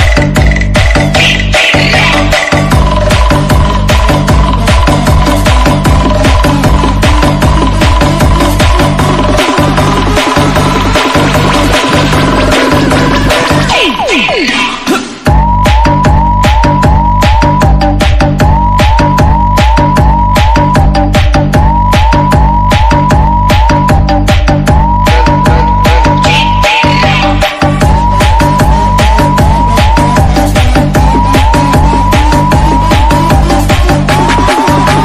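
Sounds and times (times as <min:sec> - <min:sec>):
electronic dance music: 0:00.0 - 0:35.0
pounding bass beat: 0:00.0 - 0:35.0
rising siren-like synth whoop: 0:21.6 - 0:35.0.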